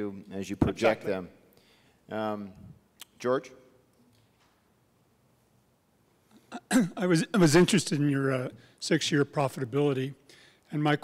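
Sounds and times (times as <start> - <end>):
throat-clearing cough: 6.5 - 7.0.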